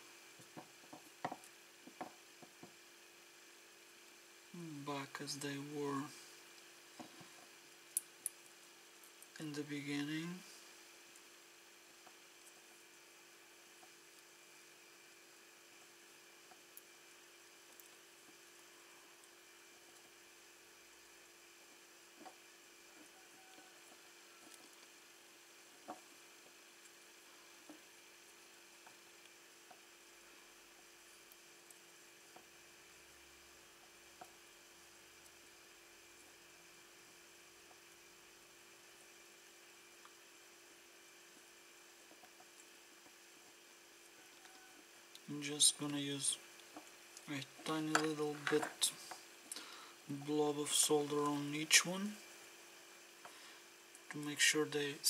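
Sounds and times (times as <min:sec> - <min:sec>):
faint steady hum: 0:00.0 - 0:55.0.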